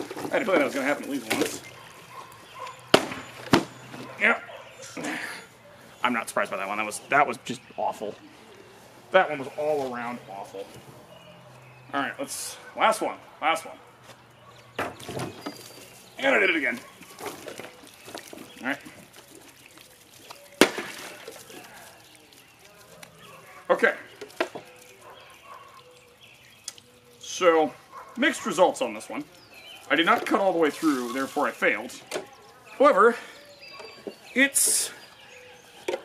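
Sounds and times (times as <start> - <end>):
water trickling and splashing: 0.0 - 36.0
blade hitting plastic jug: 2.9 - 3.9, 20.6 - 21.4.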